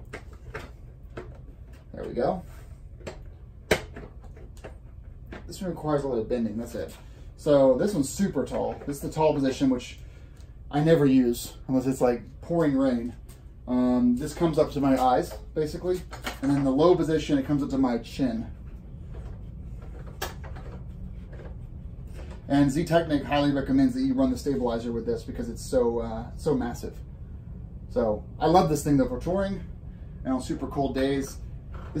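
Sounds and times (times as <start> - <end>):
steady low hum: 0.0 - 32.0.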